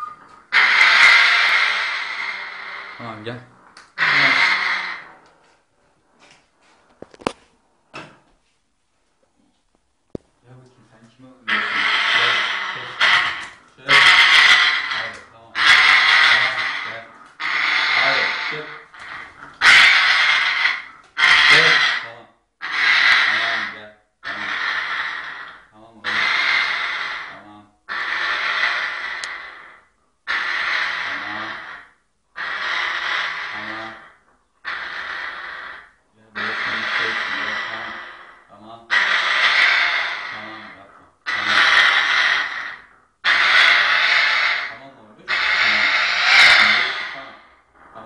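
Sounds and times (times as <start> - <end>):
parrot raspy hissing call: 0.5 - 3.2, 4.0 - 5.2, 11.4 - 47.6.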